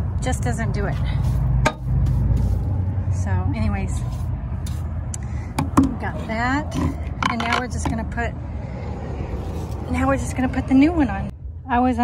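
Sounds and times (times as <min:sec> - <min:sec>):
steady low rumble: 0:00.0 - 0:12.0
brush knocking on rubber mat: 0:00.9 - 0:02.6, 0:05.5 - 0:08.0.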